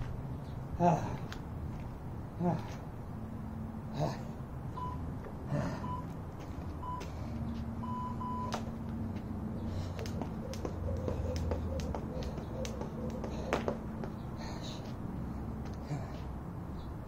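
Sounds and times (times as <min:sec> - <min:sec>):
short electronic beeps: 0:04.8 - 0:05.0, 0:05.8 - 0:06.1, 0:07.8 - 0:08.6
jump rope slapping asphalt: 0:08.5 - 0:15.8.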